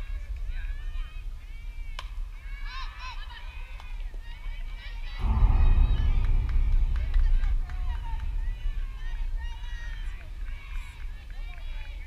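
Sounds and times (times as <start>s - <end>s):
low rumble on microphone: 4.7s - 12.0s.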